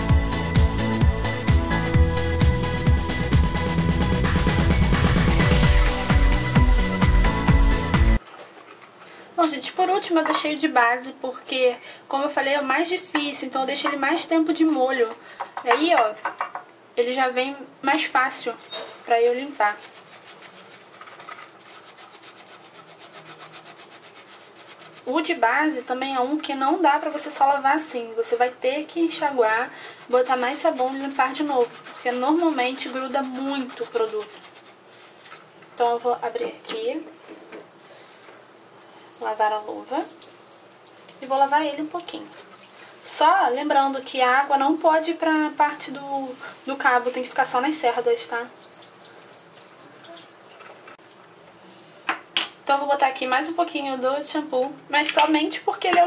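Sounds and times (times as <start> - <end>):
brush scrubbing rubber glove: 0.1 - 8.2, 18.2 - 26.7, 29.4 - 36.1, 38.4 - 49.5
water running into sink: 38.9 - 51.0.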